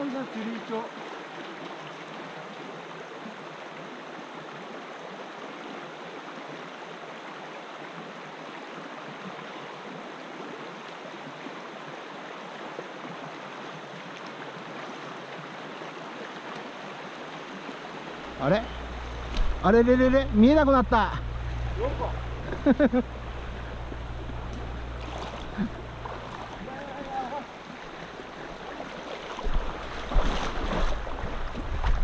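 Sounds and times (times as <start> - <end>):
river flowing over stones: 0.0 - 32.0.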